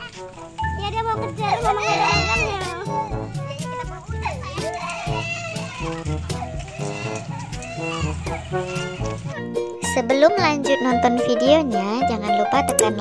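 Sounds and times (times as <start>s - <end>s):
young children's voices: 0.0s - 13.0s.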